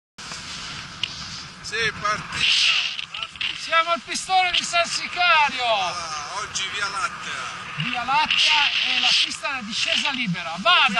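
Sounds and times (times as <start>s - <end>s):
wind hiss on microphone: 0.2s - 10.9s
man's voice: 1.7s - 10.9s.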